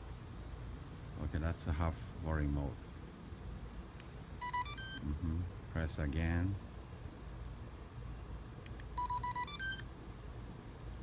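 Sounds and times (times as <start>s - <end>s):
rising electronic beeps: 4.4s - 5.1s, 9.0s - 9.9s.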